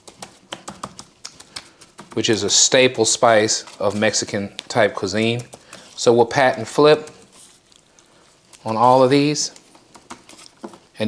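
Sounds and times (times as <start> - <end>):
plastic shaker clicking: 0.0 - 2.6.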